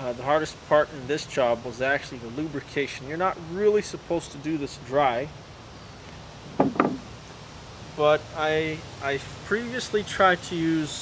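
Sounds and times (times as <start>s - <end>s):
short knocks on engine block: 6.6s - 7.1s.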